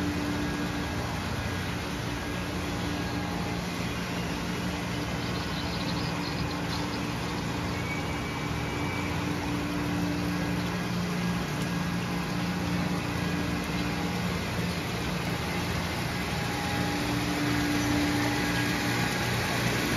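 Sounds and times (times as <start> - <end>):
circulation pump running: 0.0 - 19.9
mechanical hum of a water tank: 0.0 - 19.9
water pouring into a tank: 8.4 - 19.9.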